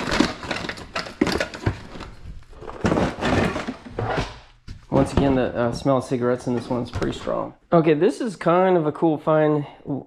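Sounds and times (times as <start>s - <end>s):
rustling and scraping: 0.0s - 7.5s.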